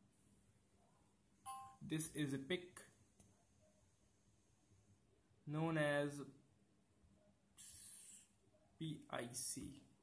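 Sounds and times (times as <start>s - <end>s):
two-tone electronic chime: 1.5s - 1.8s.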